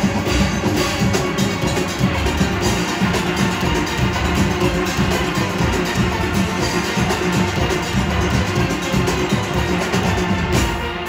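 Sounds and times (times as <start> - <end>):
drum kit and percussion beat: 0.0 - 11.0.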